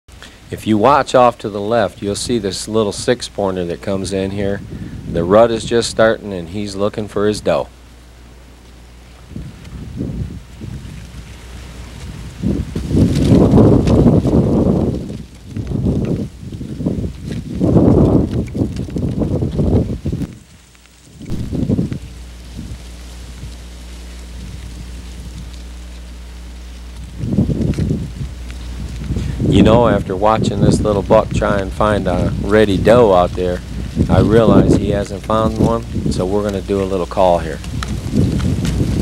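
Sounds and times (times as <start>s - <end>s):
steady low hum: 0.1s - 39.0s
wind buffeting microphone: 0.4s - 7.8s, 8.8s - 39.0s.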